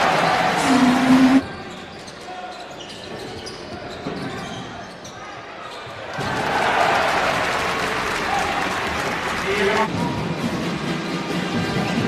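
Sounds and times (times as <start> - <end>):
crowd murmur: 0.0 - 1.4
sneakers squeaking: 0.4 - 6.0.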